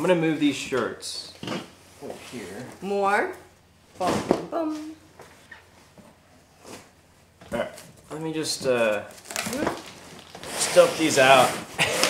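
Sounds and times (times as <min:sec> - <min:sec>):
fabric and cardboard rustling: 0:07.7 - 0:12.0.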